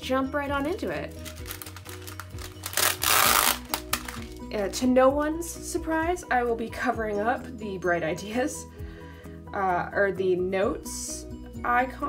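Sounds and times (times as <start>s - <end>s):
background music: 0.0s - 12.0s
plastic sticker sheet crinkling: 0.8s - 4.4s.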